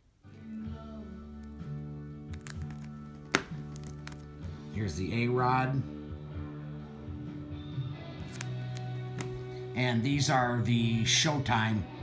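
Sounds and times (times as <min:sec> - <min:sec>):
background music with held notes: 0:00.0 - 0:12.0
card in plastic sleeve tapping: 0:02.2 - 0:04.4, 0:08.2 - 0:09.5.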